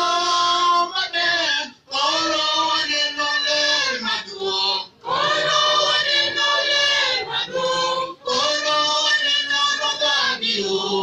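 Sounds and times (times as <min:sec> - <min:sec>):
church choir singing: 0:02.8 - 0:11.0.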